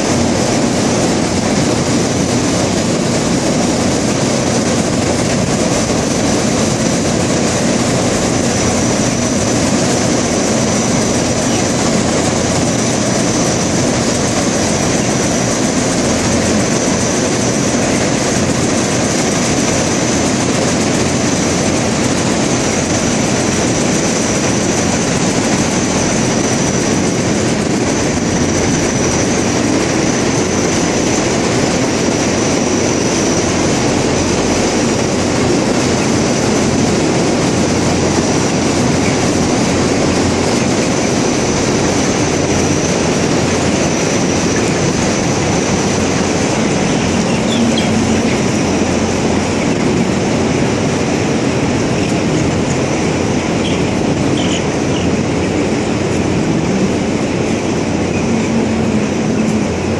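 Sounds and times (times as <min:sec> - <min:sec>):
exhaust fans rushing air: 0:00.0 - 0:59.9.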